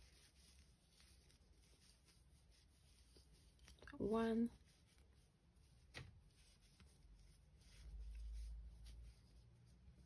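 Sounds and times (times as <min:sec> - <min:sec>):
crochet hook rubbing yarn: 0:00.0 - 0:10.0.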